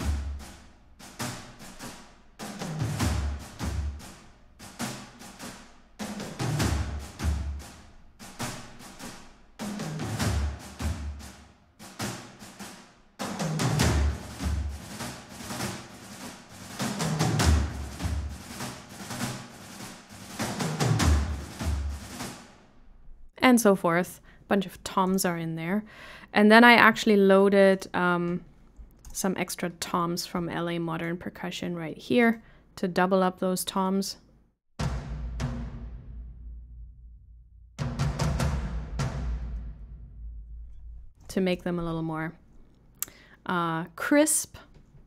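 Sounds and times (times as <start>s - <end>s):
deep timpani hits: 0.0s - 22.5s, 34.8s - 41.2s
orchestral percussion rhythm: 0.0s - 22.6s, 34.8s - 36.5s, 37.8s - 40.2s
snare drum patter: 0.0s - 22.6s, 37.8s - 39.7s.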